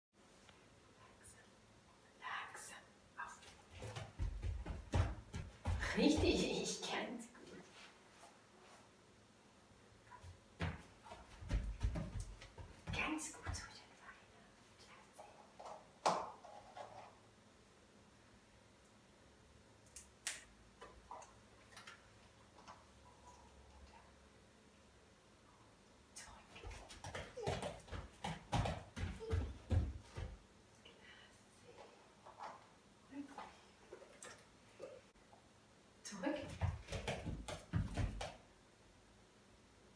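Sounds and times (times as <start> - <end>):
dull low thumps of paws: 3.7 - 6.5, 10.3 - 13.8
dog paws thudding on inflatable platform: 10.6 - 13.6, 26.7 - 30.4, 36.4 - 38.4.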